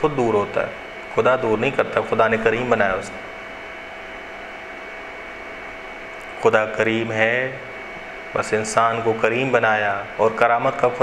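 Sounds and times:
faint constant tones: 0.0 - 11.0
room noise hiss: 0.0 - 11.0.

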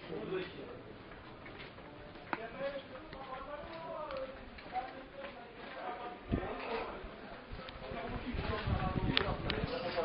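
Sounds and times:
distant voices talking: 0.0 - 10.0.

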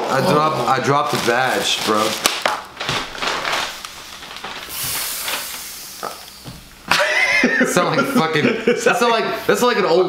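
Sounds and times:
packing paper rustling: 0.0 - 6.5
rubber squeeze toy hissing: 4.7 - 6.5
burst of laughter: 6.9 - 8.9.

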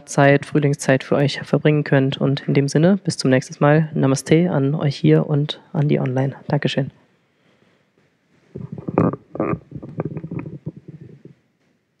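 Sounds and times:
microphone rubbing against clothing: 8.3 - 11.5.

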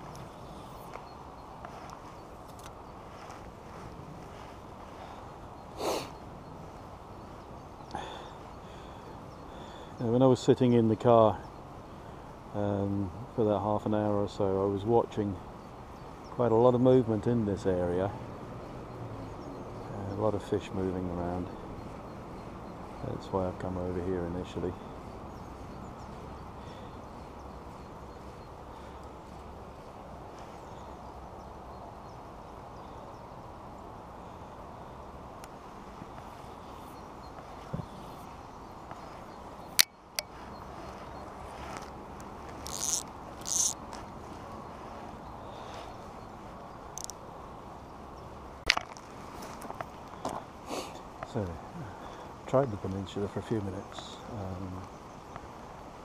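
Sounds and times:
low background noise: 0.0 - 56.0.

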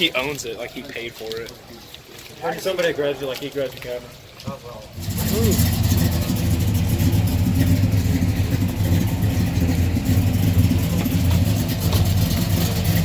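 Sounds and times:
car engine running at low revs: 4.9 - 13.0.

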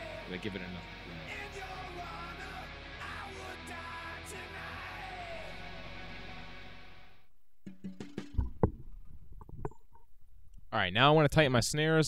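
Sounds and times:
guitar music: 0.0 - 8.4
snare drum knocks and clicks: 7.6 - 8.8
snare drum thumps: 7.6 - 8.8.

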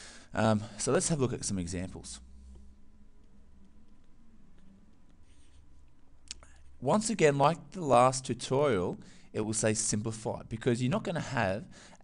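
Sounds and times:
low background hum: 0.0 - 12.0
stylus scratching on tablet: 5.2 - 5.9.

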